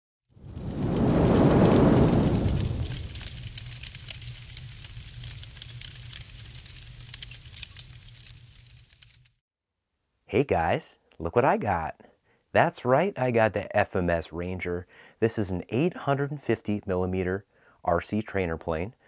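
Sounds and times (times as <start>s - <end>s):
fine crackle: 0.3s - 9.4s
deep swell: 0.4s - 3.3s
low hum: 0.4s - 3.6s.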